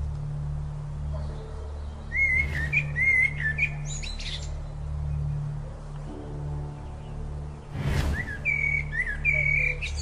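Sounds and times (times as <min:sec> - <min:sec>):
low musical drone: 0:00.0 - 0:10.0
bird chirps: 0:01.2 - 0:04.6, 0:06.8 - 0:10.0.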